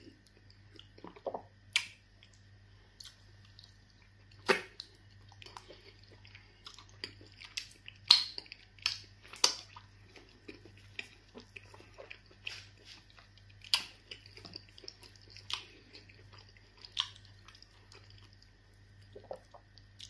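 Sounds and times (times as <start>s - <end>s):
person chewing food: 0.0s - 20.0s
steady low hum: 0.0s - 20.0s
sharp eating smacks: 4.4s - 4.9s.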